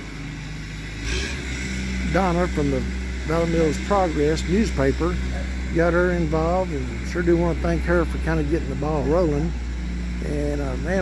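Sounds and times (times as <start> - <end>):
vehicle engine running: 0.0 - 11.0.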